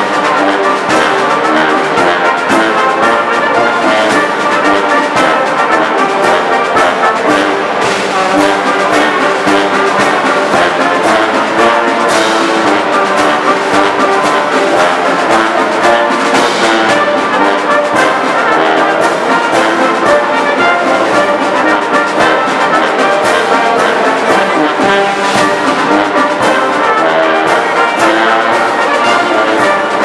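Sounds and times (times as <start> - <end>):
brass band playing a march: 0.0 - 30.0
steady drum beat: 0.0 - 30.0.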